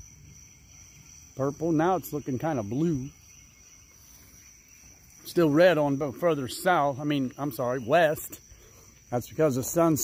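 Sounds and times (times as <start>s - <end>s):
insect chorus trilling: 0.0s - 10.0s
outdoor background noise: 0.0s - 10.0s.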